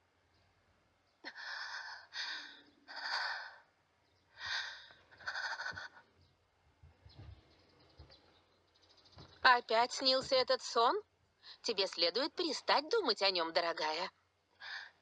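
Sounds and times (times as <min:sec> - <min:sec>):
woman breathing heavily: 0:01.2 - 0:06.1, 0:14.6 - 0:15.0.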